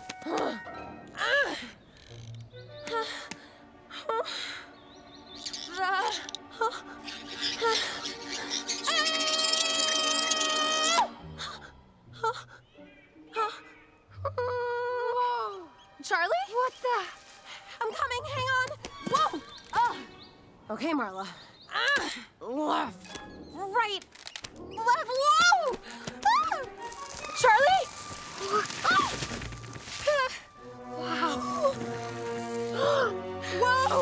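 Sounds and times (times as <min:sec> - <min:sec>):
film score music: 0:00.0 - 0:34.0.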